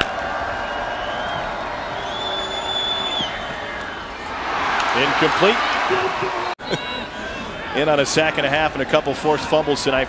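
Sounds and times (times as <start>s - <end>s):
stadium crowd roaring: 0.0s - 10.0s
high whistle-like tone: 2.0s - 3.6s.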